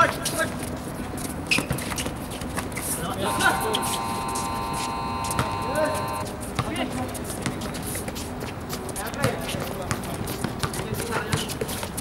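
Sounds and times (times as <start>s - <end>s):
steady multi-pitch tone: 3.2s - 6.3s
running footsteps: 3.2s - 6.4s.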